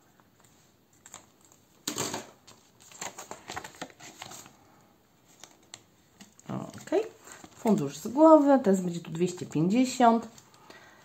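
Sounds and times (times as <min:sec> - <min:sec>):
plastic envelope crinkling: 0:01.0 - 0:04.6, 0:05.2 - 0:08.4.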